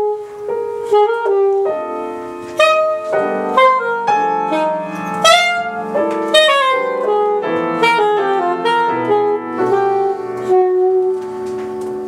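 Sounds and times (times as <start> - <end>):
alto saxophone playing jazz: 0.0 - 12.0
piano chords: 0.0 - 12.0.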